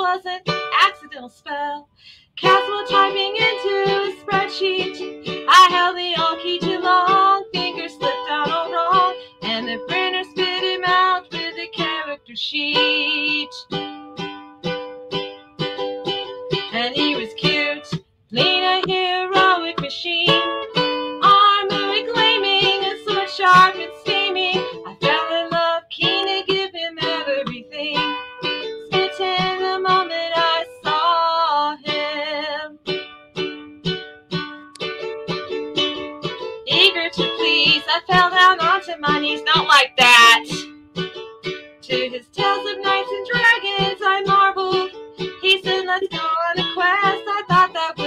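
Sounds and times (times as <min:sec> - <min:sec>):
lute plucked notes and chords: 0:12.7 - 0:48.0.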